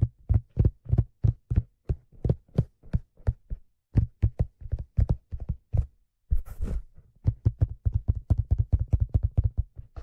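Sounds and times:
fingertips tapping on leather hat: 0.0 - 6.0, 7.1 - 10.0.

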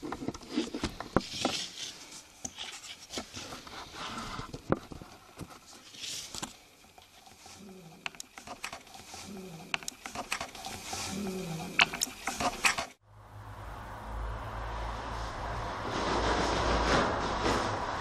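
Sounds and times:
hiss: 14.8 - 18.0.

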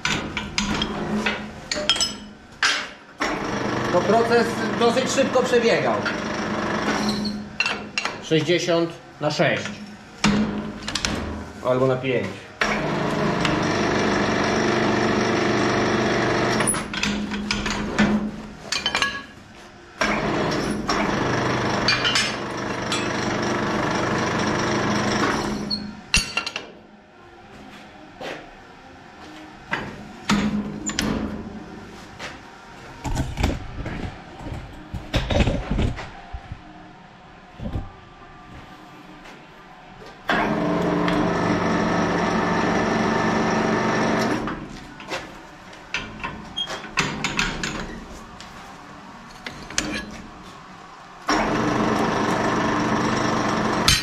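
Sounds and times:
bending machine motor running: 40.3 - 44.6, 51.3 - 54.0.

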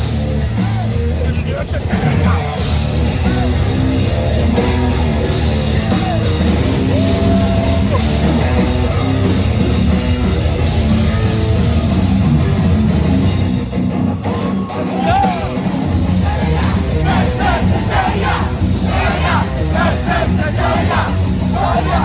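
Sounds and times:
heavy metal band playing live: 0.0 - 22.0
high voices singing and shouting: 14.2 - 22.0.

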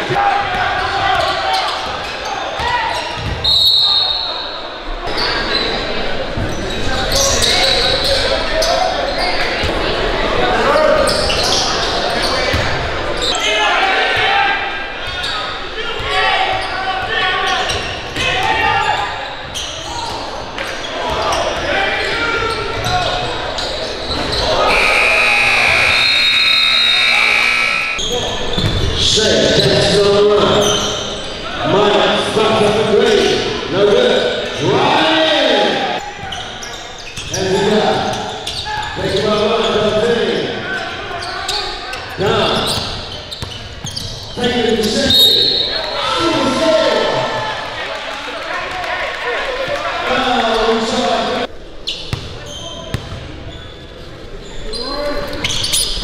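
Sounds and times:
echoing voices in a hall: 0.0 - 56.0.

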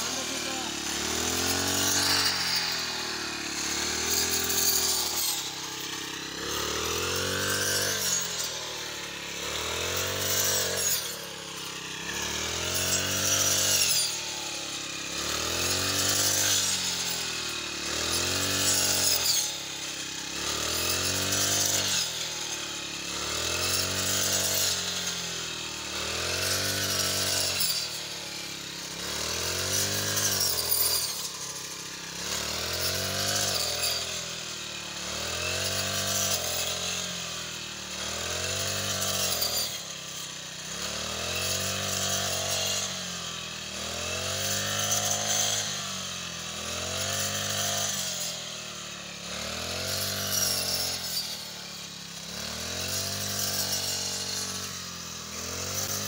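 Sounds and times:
brush cutter engine cutting wheat: 0.0 - 56.0.

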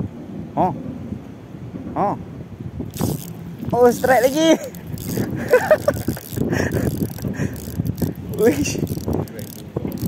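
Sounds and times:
fishing reel gears whirring: 2.9 - 10.0.

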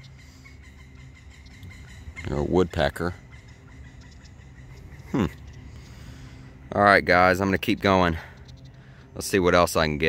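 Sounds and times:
low steady background: 0.0 - 10.0
woodpecker calling: 0.0 - 10.0.

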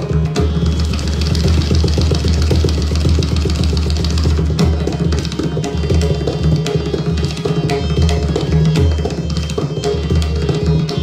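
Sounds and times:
hand drumming: 0.0 - 9.0.

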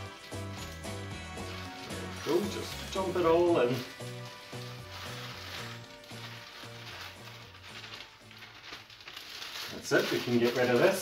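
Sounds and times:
crumbs rustling from plastic bag: 0.0 - 11.0
light background music: 0.0 - 11.0.

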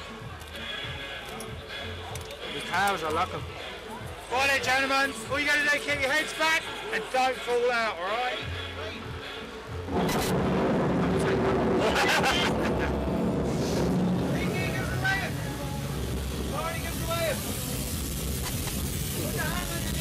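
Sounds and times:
rushing air and rumble: 9.8 - 18.3.

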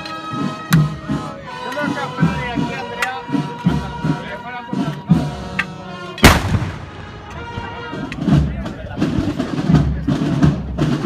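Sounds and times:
band music: 0.0 - 11.0
musket shot: 6.2 - 7.4.

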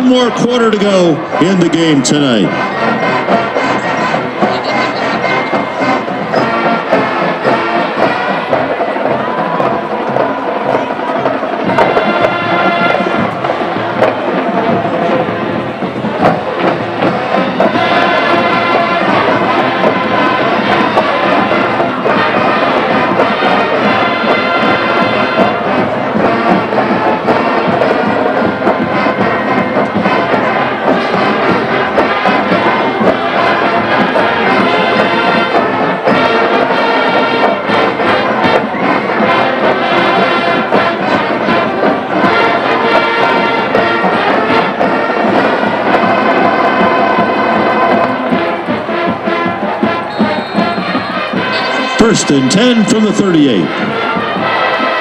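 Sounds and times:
brass band music: 0.0 - 55.0
crowd noise: 0.0 - 55.0.

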